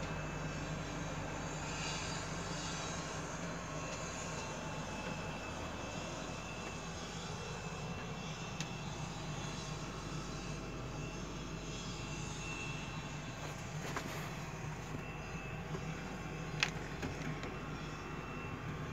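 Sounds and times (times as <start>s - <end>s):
low machinery hum: 0.0s - 18.9s.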